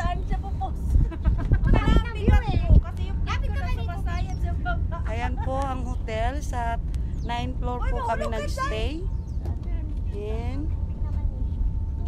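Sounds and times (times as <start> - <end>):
woman's voice: 0.0 - 11.4
wind rumble on microphone: 0.0 - 12.0.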